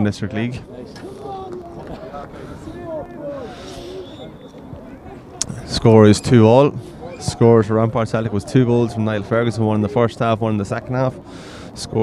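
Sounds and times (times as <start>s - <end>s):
voices talking and calling out: 0.0s - 12.0s.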